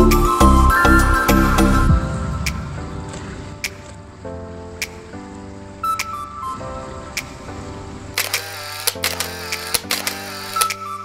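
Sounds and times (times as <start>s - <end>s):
music with held notes: 0.0s - 11.0s
camera shutter clicks: 8.2s - 10.9s.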